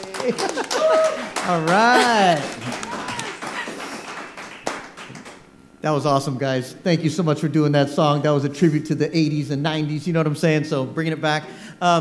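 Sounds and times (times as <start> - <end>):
people clapping lightly: 0.0 - 5.5.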